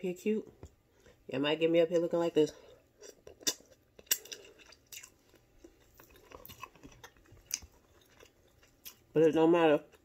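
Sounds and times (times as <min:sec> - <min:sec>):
person chewing: 0:02.6 - 0:09.1.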